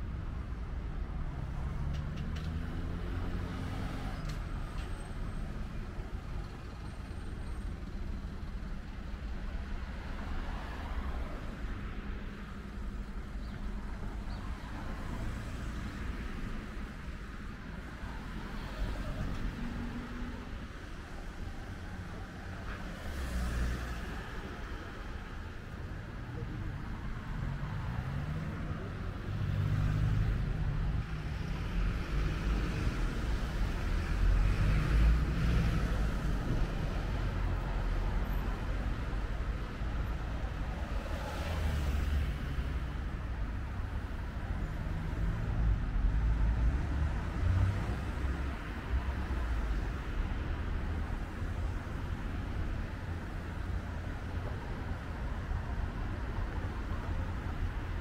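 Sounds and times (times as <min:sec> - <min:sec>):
low street rumble: 0:00.0 - 0:58.0.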